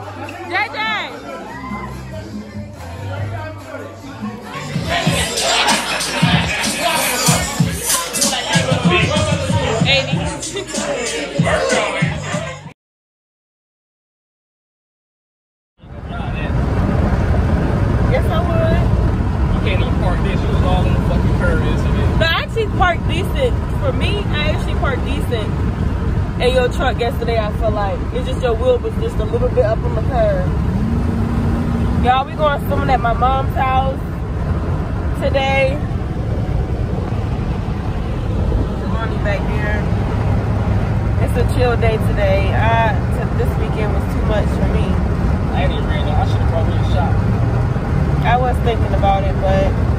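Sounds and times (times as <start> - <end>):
faint voices: 0.0 - 12.7, 31.8 - 47.3
car cabin road and engine rumble: 15.9 - 49.9.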